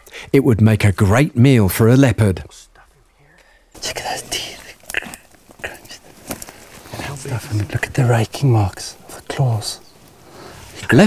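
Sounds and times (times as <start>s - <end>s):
man speaking in a low whisper: 2.5s - 4.8s, 6.9s - 9.8s
sharp crackle: 2.8s - 11.0s.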